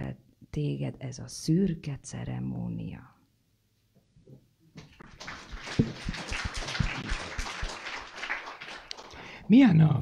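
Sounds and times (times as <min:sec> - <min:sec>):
audience applauding: 0:05.0 - 0:09.3.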